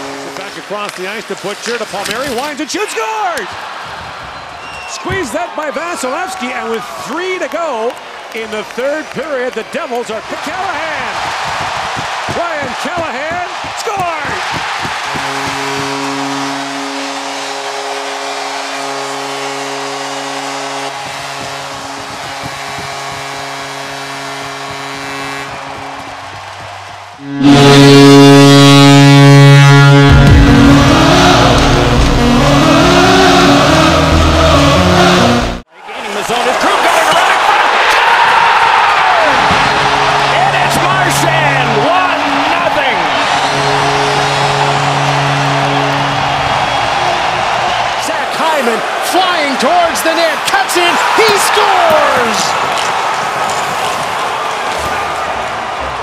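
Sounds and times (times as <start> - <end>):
held horn tone: 0.0 - 2.4, 12.4 - 35.6, 39.3 - 49.0
goal horn: 0.0 - 2.5, 10.4 - 35.6, 38.9 - 50.1, 50.8 - 55.4
arena crowd cheering: 0.0 - 56.0
loud music: 27.2 - 35.6, 39.4 - 47.9.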